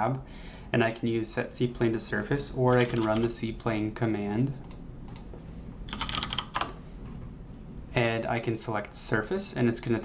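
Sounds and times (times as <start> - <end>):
computer keyboard typing: 2.7 - 3.3, 4.2 - 5.3, 5.9 - 6.8.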